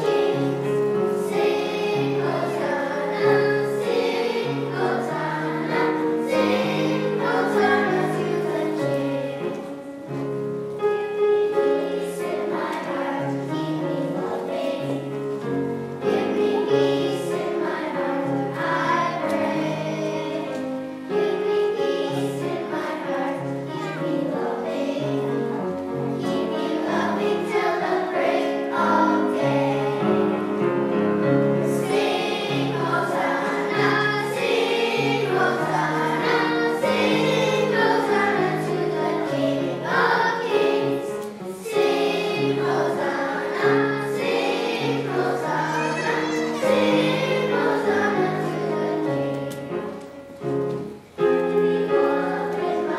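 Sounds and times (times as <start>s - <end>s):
children's choir singing: 0.0s - 52.9s.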